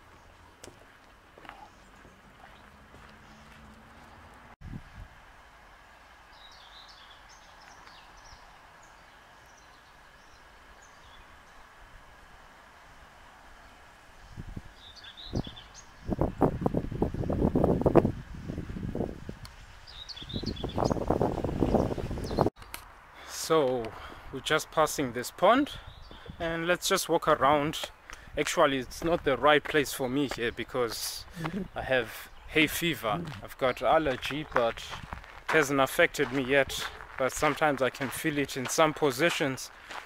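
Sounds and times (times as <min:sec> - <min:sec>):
small birds chirping: 0:00.0 - 0:04.5, 0:05.9 - 0:11.8, 0:13.6 - 0:16.7, 0:19.8 - 0:22.8, 0:23.7 - 0:40.0
wind buffeting microphone: 0:04.6 - 0:05.2, 0:14.2 - 0:22.5, 0:34.1 - 0:35.5.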